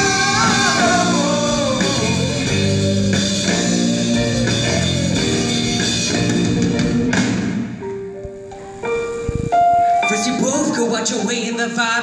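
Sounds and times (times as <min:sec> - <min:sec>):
live band playing: 0:00.0 - 0:12.0.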